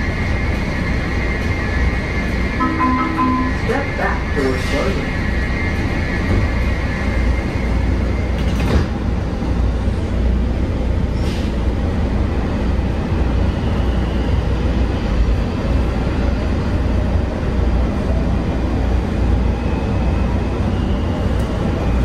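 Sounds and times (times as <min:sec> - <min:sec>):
train wheels rumbling on track: 0:00.0 - 0:22.0.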